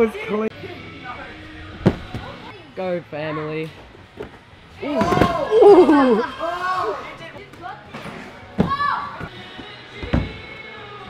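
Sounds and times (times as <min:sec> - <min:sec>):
faint background music: 0:00.0 - 0:11.0
person landing thuds: 0:01.8 - 0:02.3.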